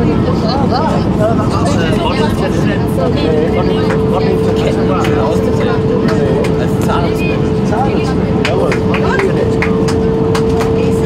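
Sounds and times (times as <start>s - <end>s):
airplane engine and airflow noise: 0.0s - 11.0s
faint passenger chatter: 0.0s - 11.0s
steady whine: 0.0s - 11.0s.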